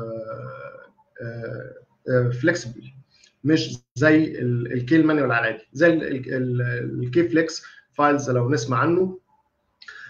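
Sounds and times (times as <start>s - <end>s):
man's drawn-out hesitation sounds: 0.0s - 9.2s.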